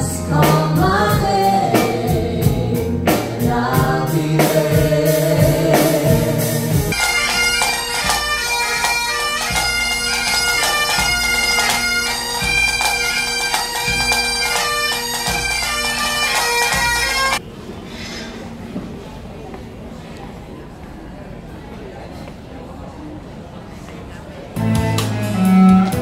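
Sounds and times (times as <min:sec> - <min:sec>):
bass drum beating: 0:00.0 - 0:07.0, 0:24.6 - 0:26.0
hall murmur: 0:00.0 - 0:21.9
bagpipes playing a tune: 0:06.9 - 0:17.4.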